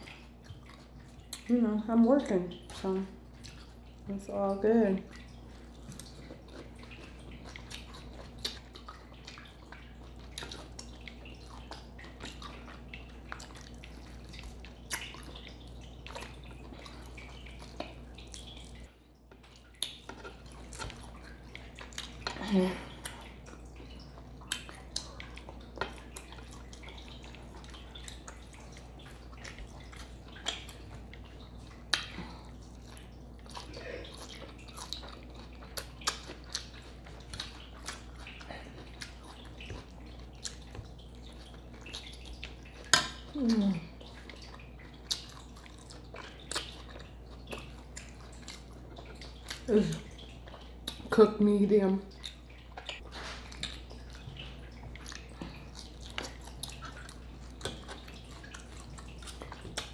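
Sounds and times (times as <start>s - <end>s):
close chewing with mouth clicks: 0.0s - 1.7s, 2.5s - 51.2s, 52.1s - 59.9s
lip smacks: 31.8s - 41.0s.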